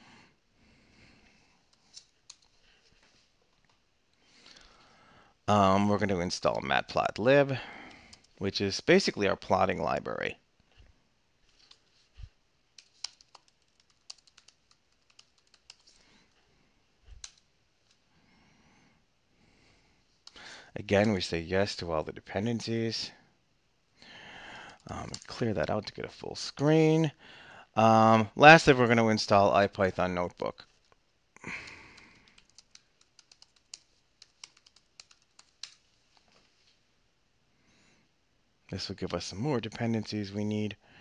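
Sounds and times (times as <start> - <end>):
typing on computer keyboard: 12.8 - 16.0, 17.1 - 17.4, 24.7 - 25.3, 31.6 - 35.8.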